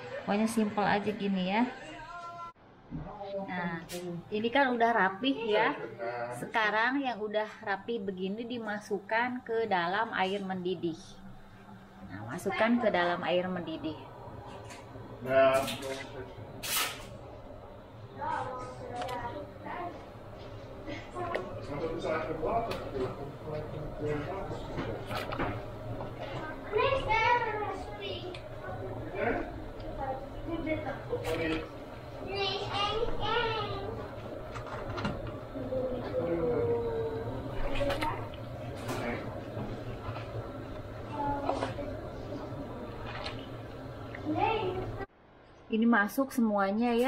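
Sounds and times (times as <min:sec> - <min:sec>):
steady low hum: 0:00.0 - 0:47.0.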